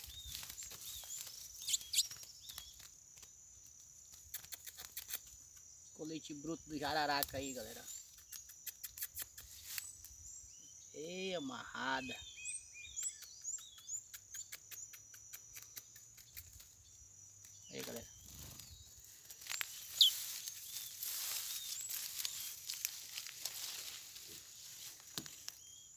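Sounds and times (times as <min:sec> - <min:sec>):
small birds chirping: 0:00.0 - 0:25.9
faint ticks: 0:13.0 - 0:16.7.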